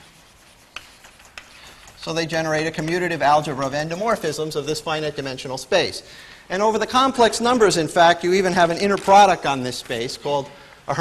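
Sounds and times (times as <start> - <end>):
chalk tapping on blackboard: 0.0 - 3.2
faint chalk scratching: 0.0 - 4.4.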